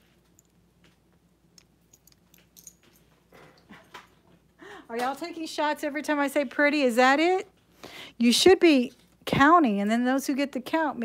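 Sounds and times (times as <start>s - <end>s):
jewelry clicking and clinking: 1.5s - 3.3s.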